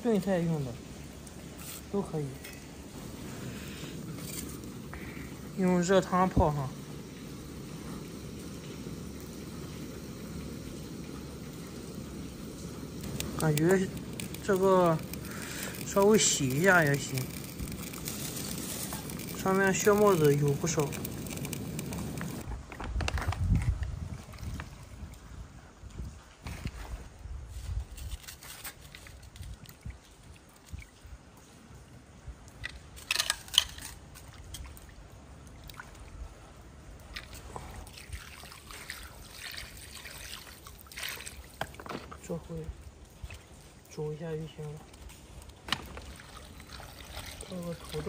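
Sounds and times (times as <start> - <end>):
water sloshing and trickling: 0.0 - 22.5, 23.5 - 48.0.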